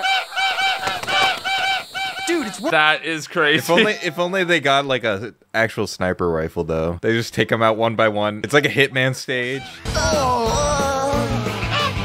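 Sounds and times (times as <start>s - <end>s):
geese honking: 0.0s - 4.6s, 9.4s - 10.2s, 11.4s - 12.0s.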